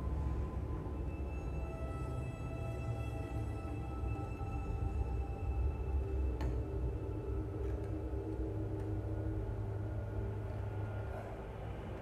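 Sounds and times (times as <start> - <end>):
film soundtrack over loudspeakers: 0.0 - 12.0.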